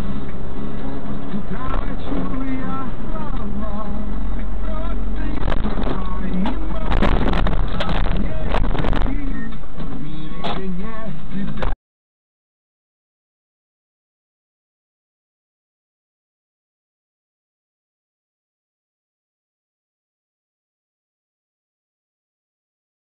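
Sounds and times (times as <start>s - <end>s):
car engine and road rumble: 0.0s - 11.8s.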